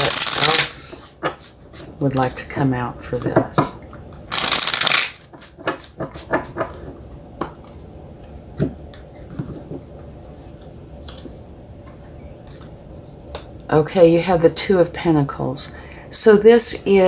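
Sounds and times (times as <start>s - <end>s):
cards being shuffled: 0.0s - 2.5s, 3.1s - 12.7s.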